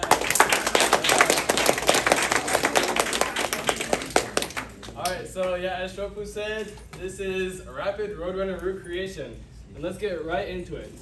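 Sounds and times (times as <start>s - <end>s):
audience applauding: 0.0s - 5.0s.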